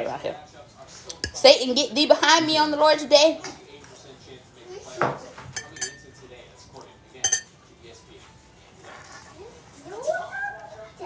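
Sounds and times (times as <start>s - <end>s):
metal fork clinking on plate: 5.6s - 6.3s, 7.2s - 7.6s.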